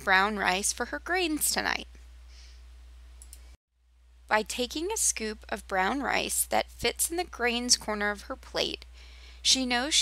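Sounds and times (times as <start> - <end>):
low electrical hum: 0.0 - 10.0
faint clicks: 3.2 - 3.6.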